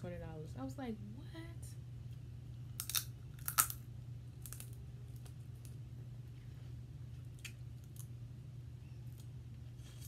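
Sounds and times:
steady low hum: 0.0 - 10.0
crab shell crunching when bitten: 2.8 - 3.8, 4.4 - 5.4.

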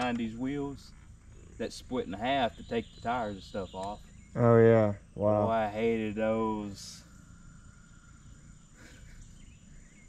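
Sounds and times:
high-pitched insect drone: 0.0 - 10.0
low background rumble: 0.0 - 10.0.

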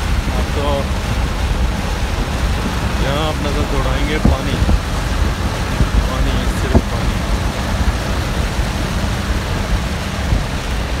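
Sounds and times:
vehicle rumble on wet road: 0.0 - 11.0.

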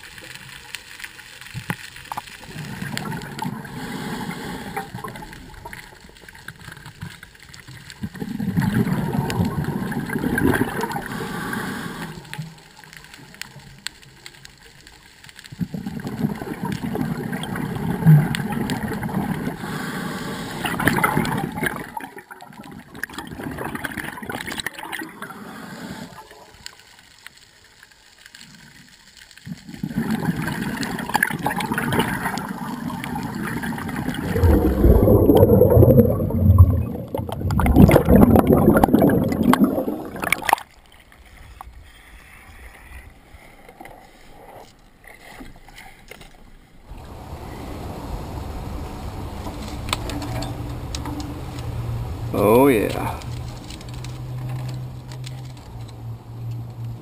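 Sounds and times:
underwater bubbling: 0.0 - 57.0
heavy rumbling bubbling: 8.1 - 11.8, 29.8 - 40.6.

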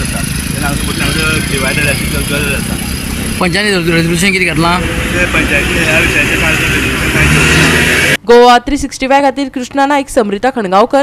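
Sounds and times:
vehicle engines rumbling: 0.0 - 8.2.

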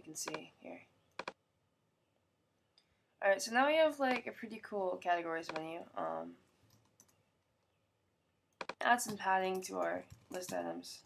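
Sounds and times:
mouse button clicks: 5.5 - 5.7.

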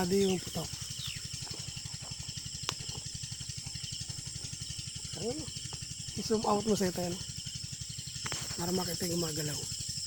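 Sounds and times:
fast low motor throb: 0.0 - 10.0
high insect drone: 0.0 - 10.0.

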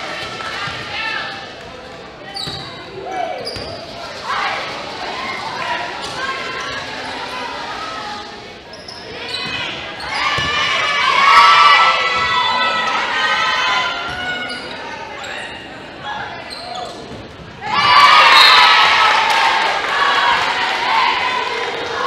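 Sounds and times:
people shouting: 17.6 - 22.0.

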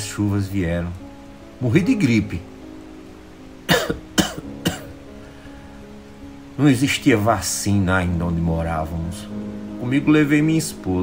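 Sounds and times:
man coughing: 3.7 - 4.9.

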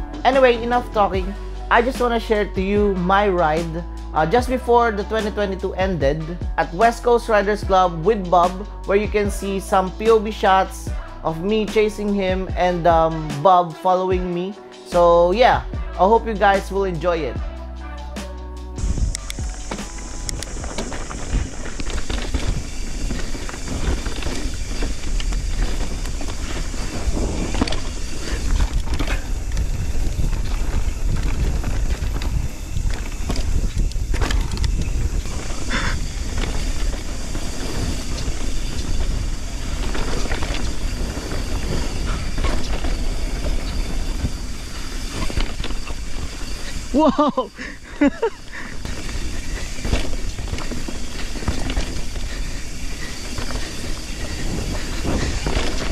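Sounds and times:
background music: 0.0 - 29.8
bike knocks and rattles: 18.8 - 55.9
bike tyres rumbling over dirt: 18.8 - 55.9
wind on microphone: 18.8 - 55.9.

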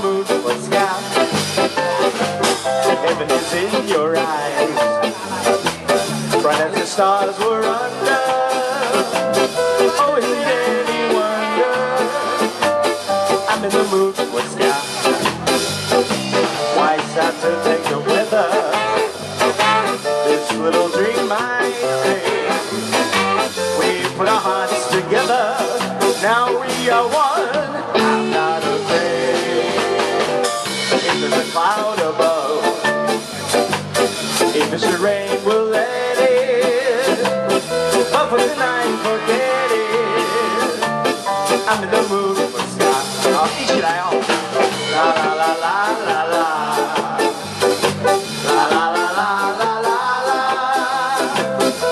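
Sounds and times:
live ska band playing: 0.0 - 51.9.

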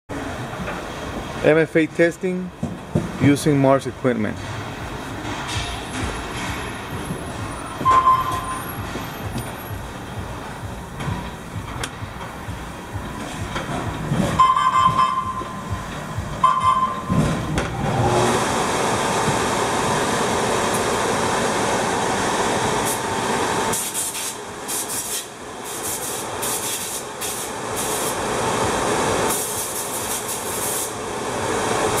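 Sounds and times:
short high blips: 7.4 - 8.9, 14.4 - 15.8, 16.4 - 17.2.

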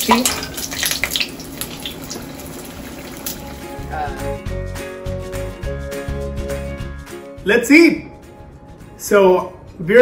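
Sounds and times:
food sizzling in hot oil: 0.0 - 4.2
background music with a beat: 3.5 - 7.5.

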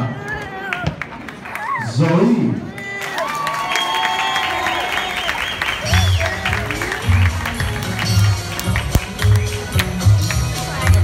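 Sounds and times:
audience applauding: 2.8 - 11.0
folk dance music with bass beat: 5.9 - 11.0.

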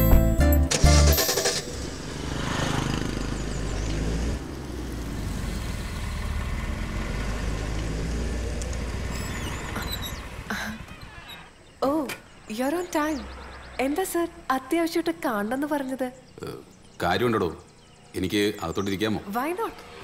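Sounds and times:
car driving off: 0.0 - 11.7, 12.8 - 14.5.

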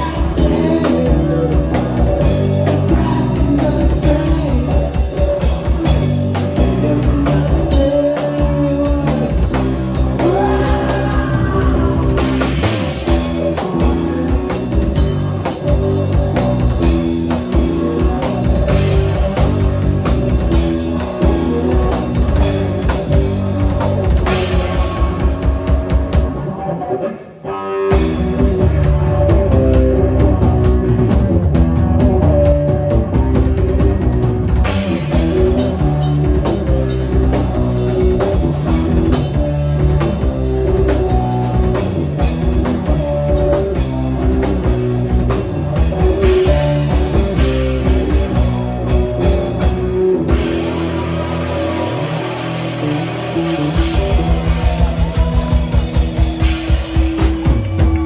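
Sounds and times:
drum kit: 0.0 - 26.8, 27.8 - 58.0
bass guitar: 0.0 - 58.0
electric guitar: 0.0 - 58.0.

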